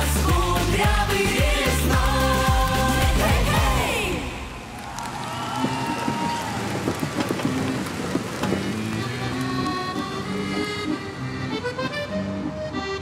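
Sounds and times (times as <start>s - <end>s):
music: 0.0s - 4.6s, 5.6s - 13.0s
audience applauding: 4.6s - 11.0s.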